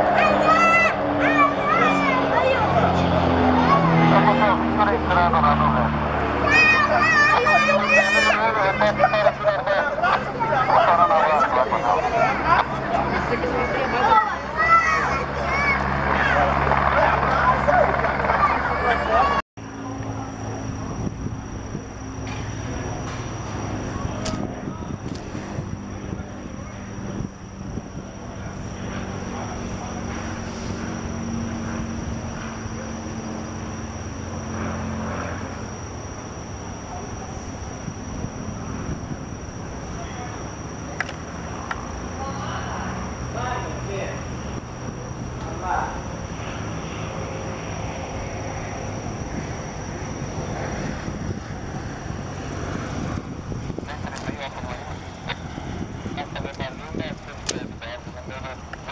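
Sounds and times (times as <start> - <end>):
people chattering: 0.0 - 22.1
propeller aircraft engine droning: 0.0 - 58.9.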